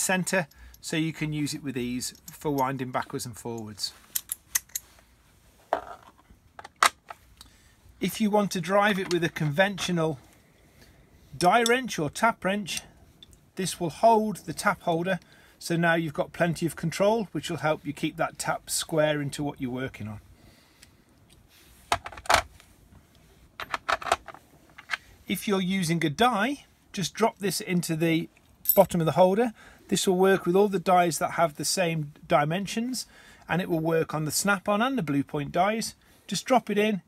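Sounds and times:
metal tools clicking: 2.1 - 2.8, 3.6 - 4.9
metal hand tools clinking: 28.6 - 29.0.

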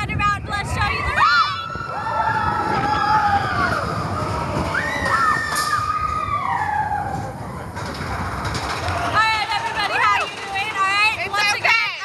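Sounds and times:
roller coaster train rumble: 0.0 - 12.0.

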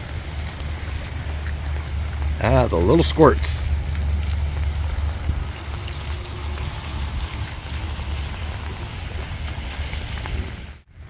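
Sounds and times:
steady rain falling: 0.0 - 10.9
wind rumbling on microphone: 0.0 - 11.0.

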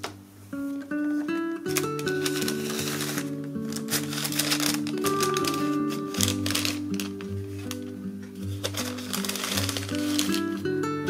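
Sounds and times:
acoustic guitar music: 0.0 - 11.0
paper and cellophane rustling: 0.7 - 10.8.

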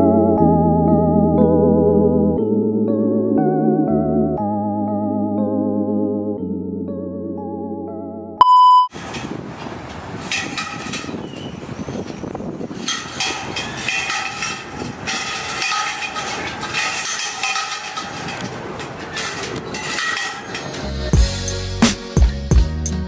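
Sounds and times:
loud electronic beep: 8.4 - 8.9
city ambience noise: 8.9 - 22.0
metallic clatters and knocks: 9.0 - 11.4, 12.0 - 21.1.

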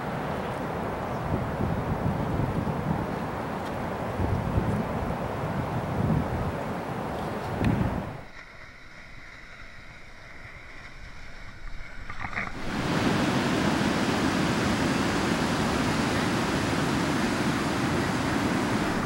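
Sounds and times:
waves breaking on a beach: 0.0 - 19.0.

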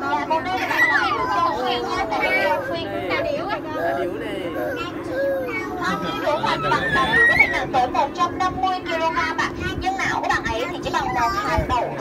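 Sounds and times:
boat motor droning: 0.0 - 12.0
children and adults chattering: 0.0 - 12.0.

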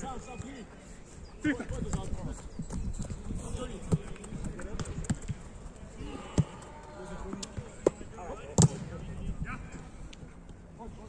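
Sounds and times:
football kick: 8.6 - 8.9.

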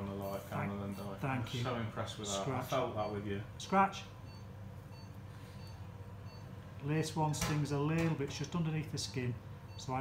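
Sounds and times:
steady low hum: 0.0 - 10.0
patient monitor beeps: 0.8 - 1.7, 2.3 - 7.2, 9.2 - 10.0.

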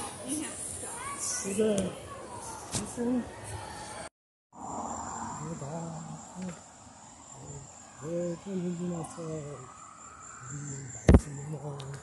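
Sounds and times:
high-pitched insect trill: 4.6 - 12.0.

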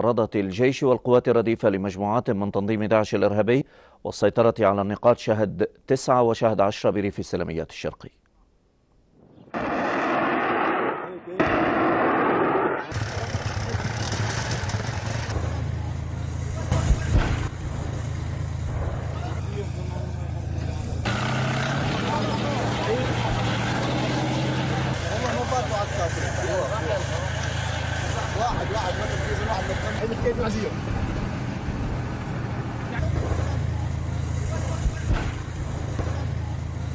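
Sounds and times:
loud bang: 9.2 - 15.6
heavy vehicle engine drone: 12.4 - 36.9.

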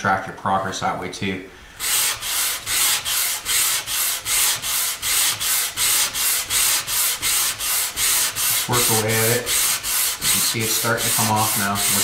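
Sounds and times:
sandpaper rasping on wood: 1.8 - 12.0.

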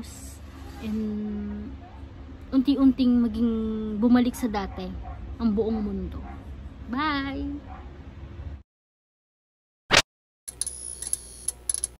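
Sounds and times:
sharp mechanical clicks: 10.5 - 12.0.

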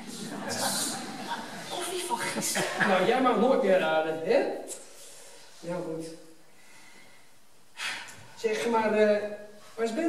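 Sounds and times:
person speaking: 0.0 - 6.3.

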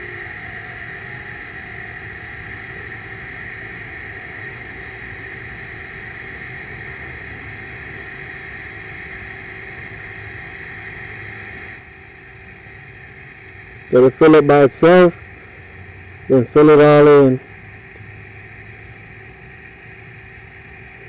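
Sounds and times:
welding arc hissing: 0.0 - 21.0.

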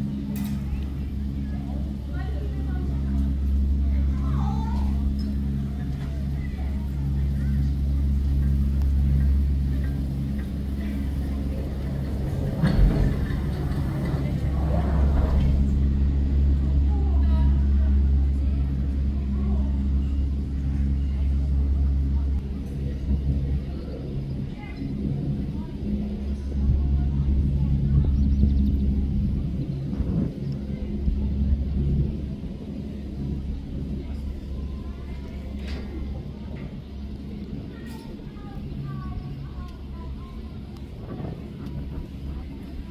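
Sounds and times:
lift drive machinery humming: 0.0 - 42.9
people talking: 0.0 - 42.9.

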